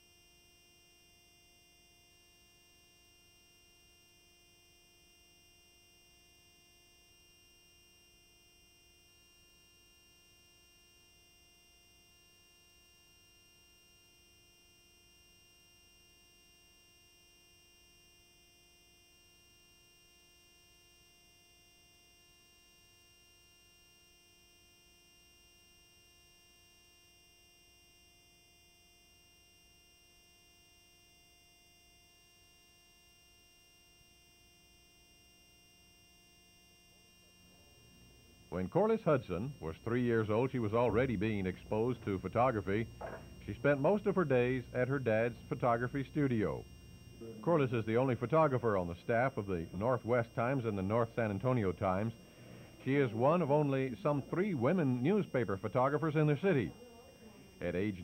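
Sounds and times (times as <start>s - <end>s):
faint steady hum: 0.0s - 58.0s.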